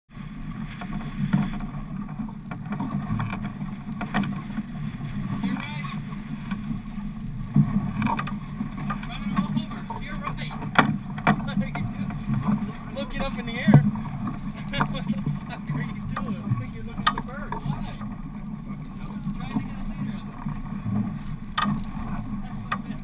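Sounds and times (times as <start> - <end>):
boat engine rumble: 0.1 - 23.0.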